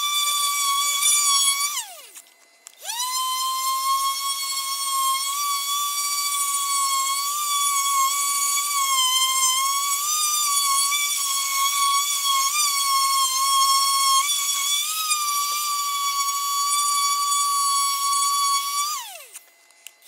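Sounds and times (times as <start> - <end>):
power sander whining: 0.0 - 19.4.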